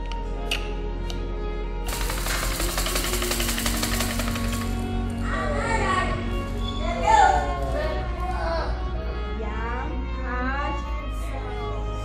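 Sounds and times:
background music: 0.0s - 12.0s
plastic rattle toy shaken: 1.9s - 4.9s.

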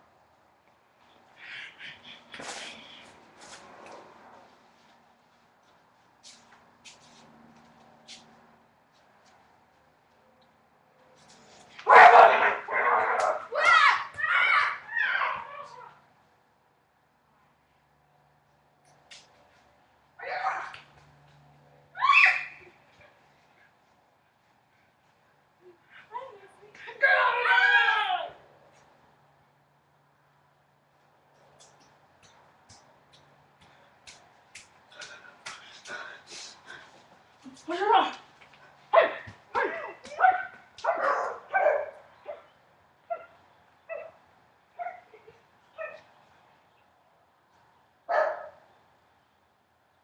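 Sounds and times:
dog barking: 11.9s - 13.5s, 38.9s - 42.5s, 48.1s - 48.6s
girls shrieking: 13.4s - 16.0s, 22.0s - 22.7s, 27.0s - 28.4s.

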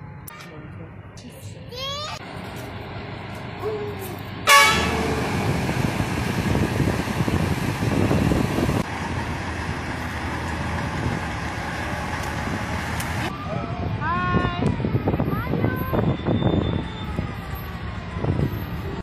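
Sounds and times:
truck engine rolling past: 2.2s - 14.0s, 14.8s - 19.0s
vehicle horn blast: 4.4s - 5.4s.

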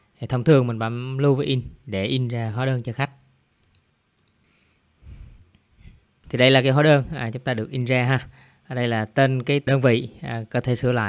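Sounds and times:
computer mouse clicks: 3.6s - 4.6s.

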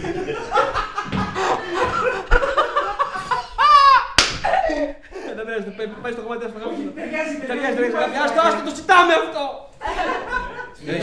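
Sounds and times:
man laughing: 1.4s - 5.0s
sharp hand clap: 4.1s - 4.6s.

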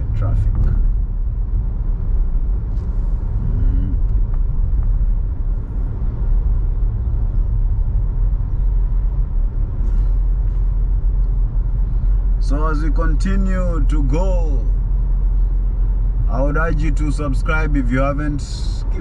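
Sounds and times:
car driving rumble inside cabin: 0.0s - 19.0s.

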